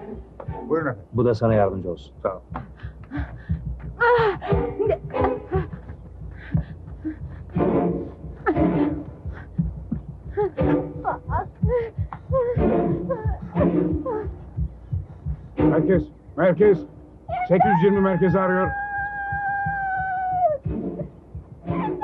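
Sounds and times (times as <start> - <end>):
tense film score music: 0.0 - 22.0
woman gasping and crying: 2.7 - 7.6.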